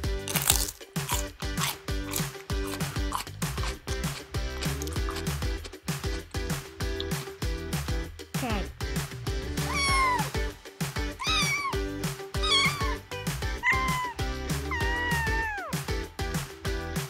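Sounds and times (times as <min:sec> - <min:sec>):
background music with steady beat: 0:00.0 - 0:17.0
cat meowing: 0:09.6 - 0:10.4, 0:11.2 - 0:13.0, 0:13.6 - 0:15.8.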